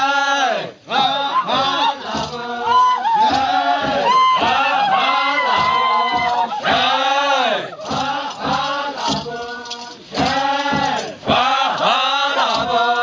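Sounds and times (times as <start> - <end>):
men chanting together: 0.0 - 13.0.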